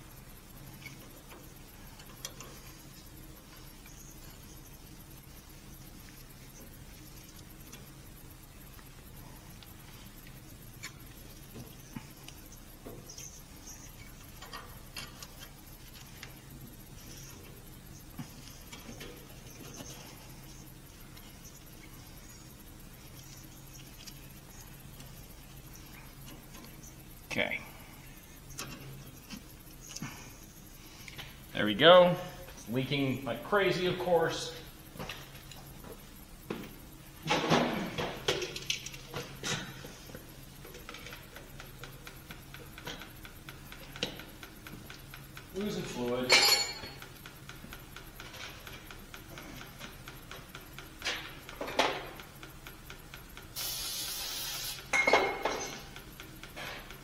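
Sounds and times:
steady low hum: 0:00.0 - 0:57.0
small metal clicks: 0:00.2 - 0:27.3, 0:38.4 - 0:39.8.

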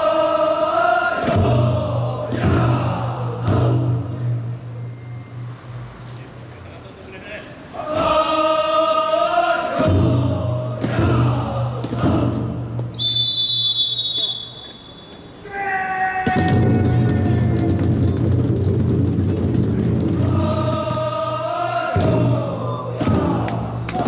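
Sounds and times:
people shouting long calls: 0:00.0 - 0:04.2, 0:07.2 - 0:13.3, 0:15.4 - 0:18.1, 0:20.0 - 0:24.0
taiko drum steady beat: 0:01.4 - 0:04.4, 0:09.8 - 0:12.8, 0:16.4 - 0:21.2, 0:21.9 - 0:24.0
shrill whistle: 0:02.0 - 0:09.7, 0:10.3 - 0:18.2.

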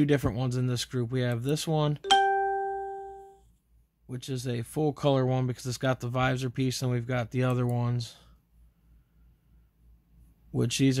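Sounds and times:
chime note ringing: 0:02.1 - 0:03.4.

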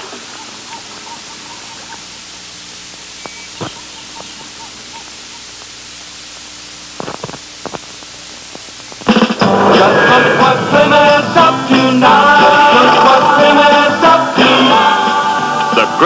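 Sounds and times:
tape hiss: 0:00.0 - 0:16.0
faint short chirps: 0:03.2 - 0:05.5
faint clicks: 0:03.2 - 0:09.1.

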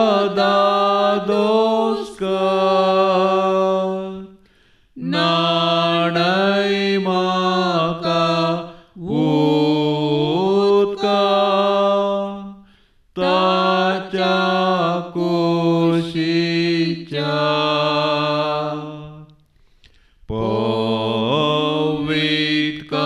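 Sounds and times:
person singing devotional chant: 0:00.0 - 0:19.3, 0:20.3 - 0:23.0.

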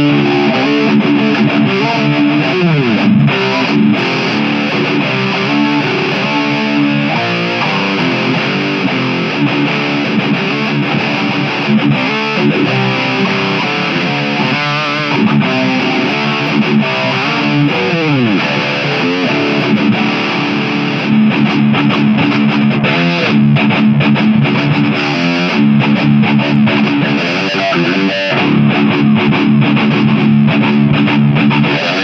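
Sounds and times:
electric guitar playing fast riffs: 0:00.0 - 0:32.0.

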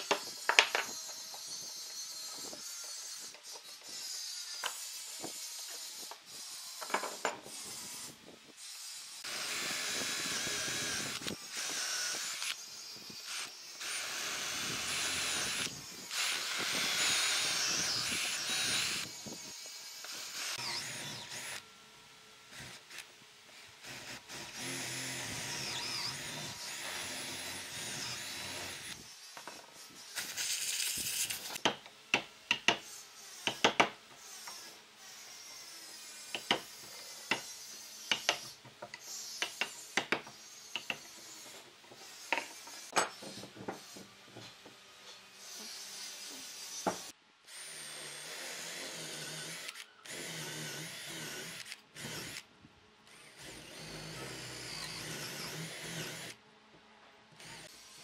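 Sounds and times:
cordless drill boring into wood: 0:09.2 - 0:21.6, 0:22.5 - 0:23.0, 0:23.8 - 0:29.0, 0:46.7 - 0:52.5, 0:53.1 - 0:56.4, 0:57.4 - 0:57.8.

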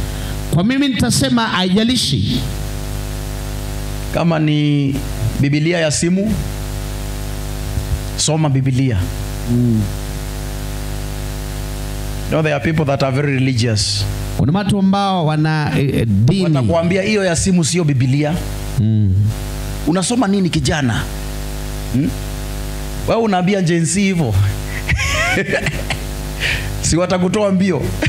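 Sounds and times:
electrical buzz-hum: 0:00.0 - 0:28.0
short low vocal hum: 0:04.9 - 0:05.4, 0:06.4 - 0:08.2, 0:09.0 - 0:11.9, 0:18.5 - 0:19.8, 0:21.1 - 0:22.7, 0:24.3 - 0:26.8.

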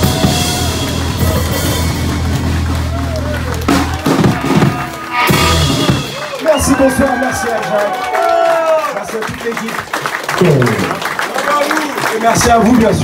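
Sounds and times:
electric guitar: 0:00.0 - 0:06.4
upright bass line: 0:00.0 - 0:06.4
drum kit: 0:00.0 - 0:07.2.

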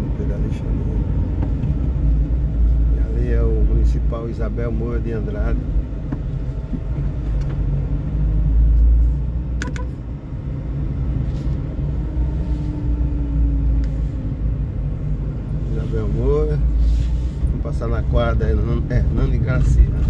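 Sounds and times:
car engine and road rumble: 0:00.0 - 0:20.0
short click: 0:09.6 - 0:09.9.

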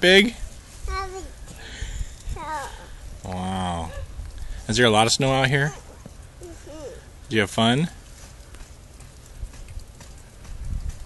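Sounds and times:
wind rumble on microphone: 0:00.3 - 0:04.8, 0:09.0 - 0:11.0.

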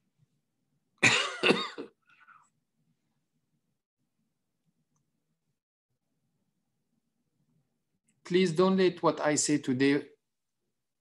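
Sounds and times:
man coughing: 0:01.0 - 0:02.0.

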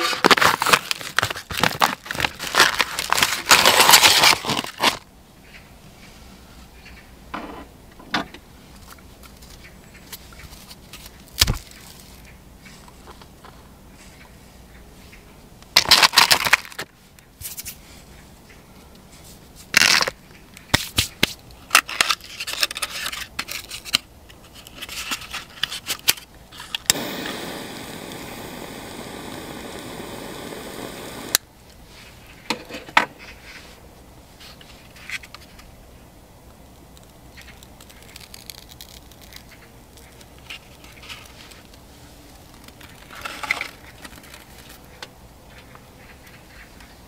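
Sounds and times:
steady hiss: 0:26.8 - 0:32.3
scraping and rustling: 0:37.0 - 0:47.0.

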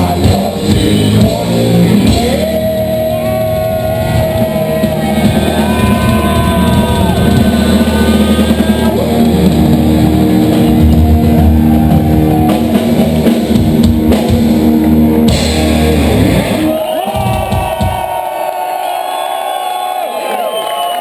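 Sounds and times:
metal band playing live: 0:00.0 - 0:18.2
crowd cheering: 0:01.9 - 0:21.0.

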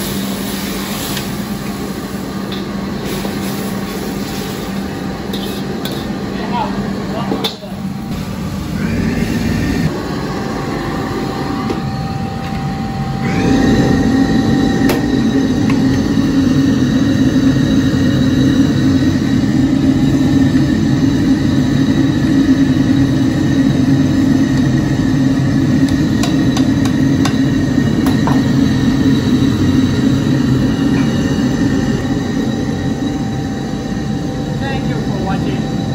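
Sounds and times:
gas stove burner roaring: 0:00.0 - 0:35.9.

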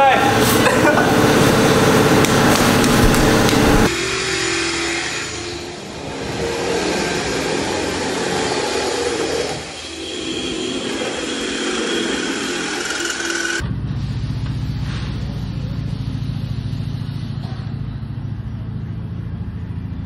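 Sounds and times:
steady motor sound: 0:00.6 - 0:13.6.

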